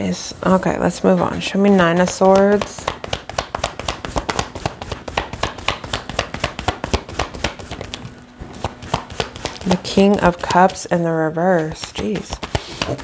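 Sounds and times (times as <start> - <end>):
cards being shuffled: 1.7 - 13.0.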